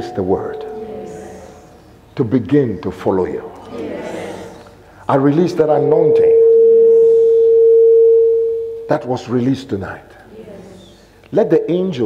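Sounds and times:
person speaking: 0.0 - 1.8
steady pure tone: 0.0 - 3.2, 4.4 - 9.5.

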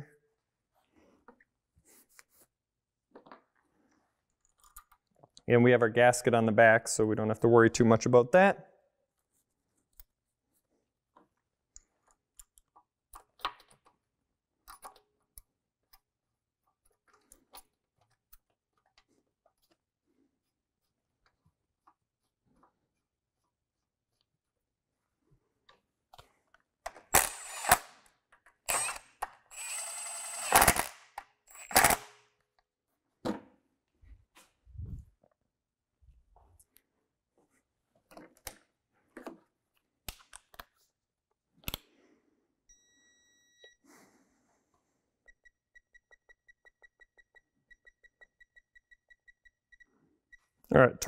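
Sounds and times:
cordless power tool bursts: 27.1 - 27.9, 28.7 - 32.2.

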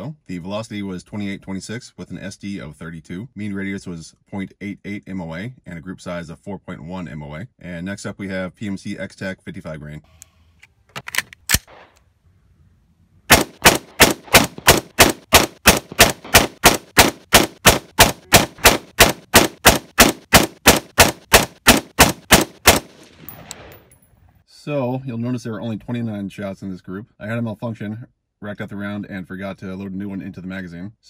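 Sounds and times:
rifle shots: 11.1 - 12.0, 13.3 - 24.3.

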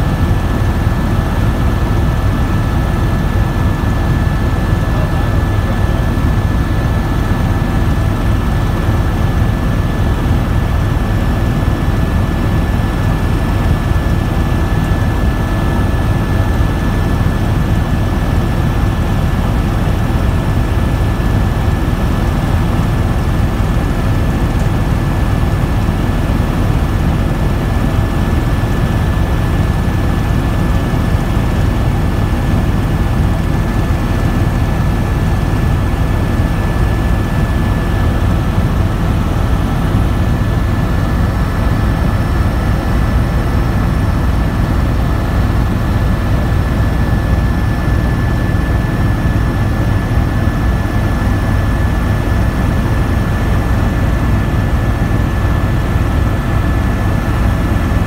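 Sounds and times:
helicopter engine and rotor drone: 0.0 - 58.0.

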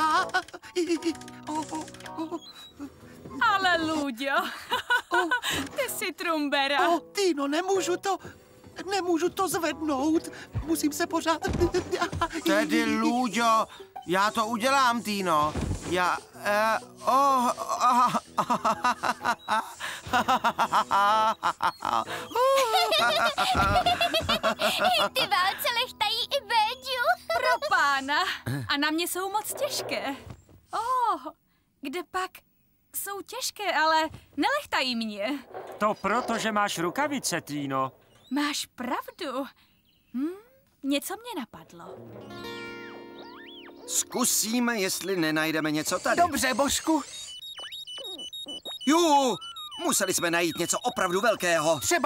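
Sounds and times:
cartoon character giggling: 17.5 - 25.6, 27.3 - 28.0
high electronic beeping pips: 43.2 - 52.0.

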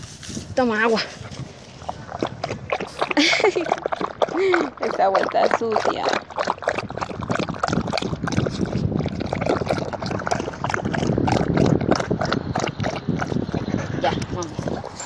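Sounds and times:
dog lapping water: 1.1 - 15.0.

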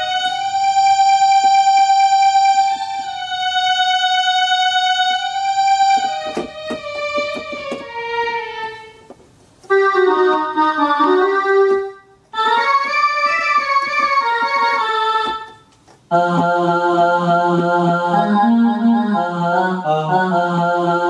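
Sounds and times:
electronic keyboard notes: 0.0 - 21.0
keyboard chords: 0.0 - 21.0.

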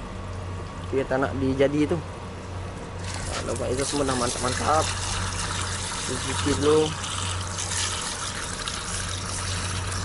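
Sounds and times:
water spraying from hose nozzle: 3.0 - 10.0.

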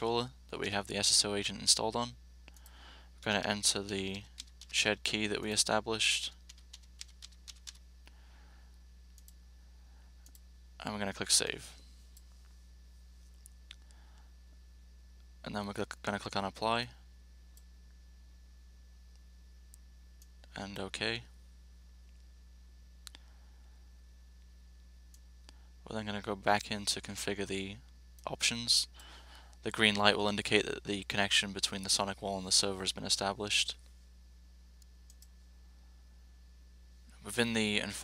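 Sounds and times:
low steady hum: 0.0 - 38.0
keyboard keystrokes: 4.1 - 4.8, 6.4 - 7.8
computer mouse clicks: 34.8 - 35.3.

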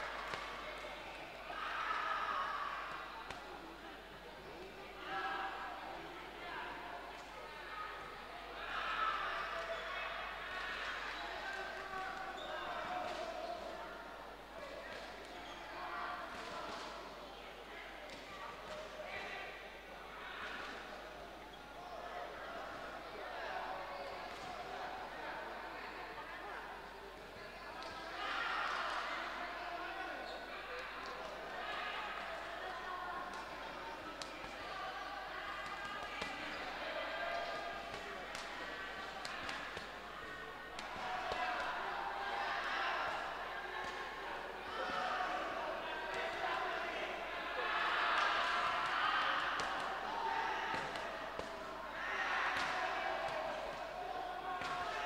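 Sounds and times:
voices calling out in a hall: 0.0 - 55.0.

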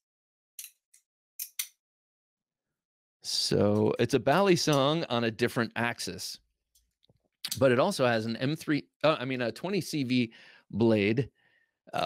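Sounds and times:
folding knife clicking: 1.4 - 1.7.

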